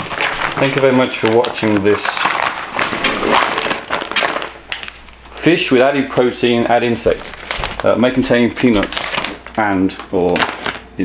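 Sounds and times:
plastic rustling handling noise: 0.0 - 11.0.

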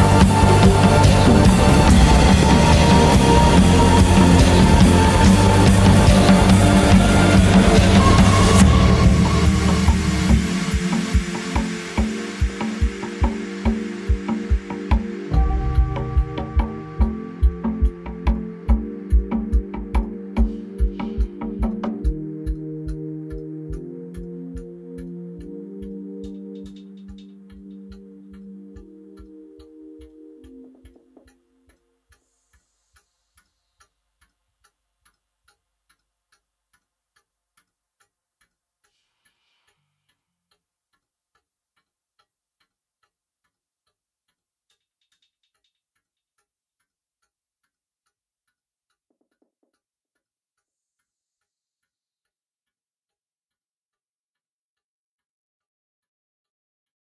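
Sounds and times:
synthesizer chord: 0.0 - 31.2
dry electronic tick: 0.0 - 39.4.

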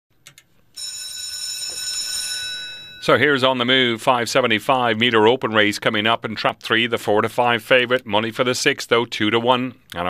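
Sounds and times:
bell ringing steadily: 0.8 - 3.9.

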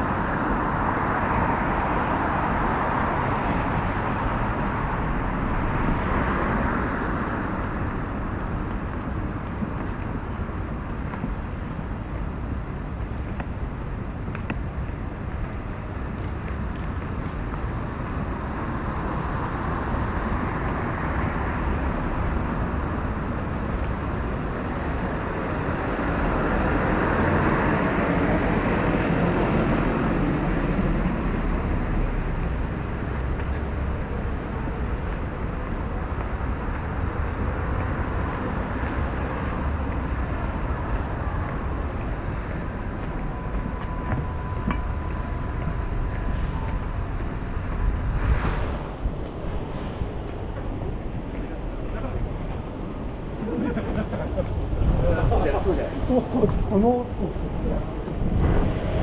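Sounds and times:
road traffic rumble: 0.0 - 59.0.

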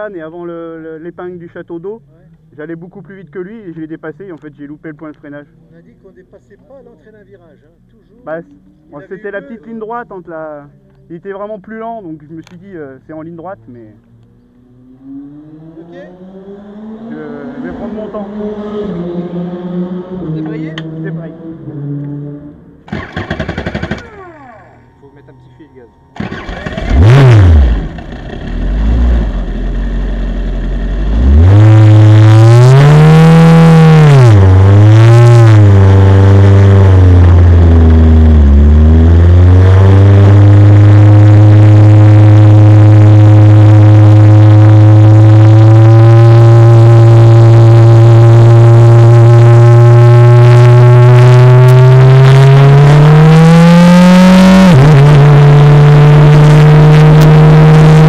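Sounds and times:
race car engine revving: 13.3 - 25.3, 26.1 - 58.0.

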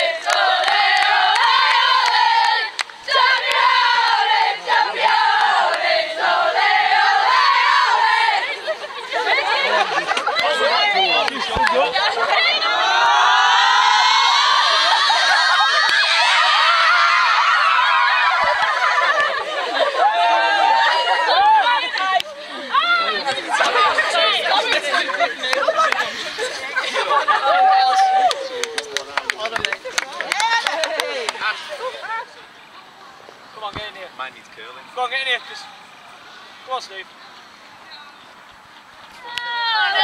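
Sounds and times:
voices calling out: 0.0 - 40.0
group clapping hands: 0.2 - 3.8, 25.4 - 26.1, 28.2 - 31.5
women screaming and cheering: 10.5 - 24.0, 27.1 - 29.2.

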